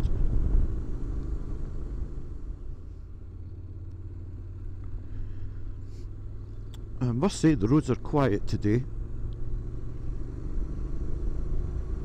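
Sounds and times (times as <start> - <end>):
wind rumble on microphone: 0.0 - 2.6
motorcycle engine running: 0.0 - 12.0.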